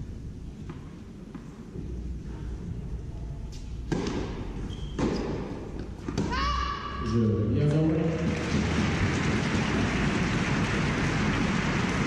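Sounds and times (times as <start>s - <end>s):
low hum of large hall: 0.0s - 12.0s
tennis ball bouncing on hard court: 3.9s - 6.4s.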